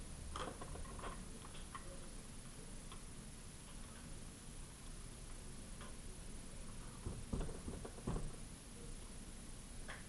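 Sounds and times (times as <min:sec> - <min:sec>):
steady low hum: 0:00.0 - 0:10.0
faint irregular clicks: 0:00.3 - 0:04.1.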